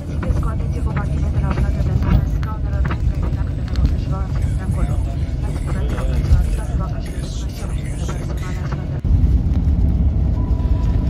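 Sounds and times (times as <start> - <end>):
passengers talking: 0.0 - 9.1
airliner rumbling on runway: 0.0 - 11.0.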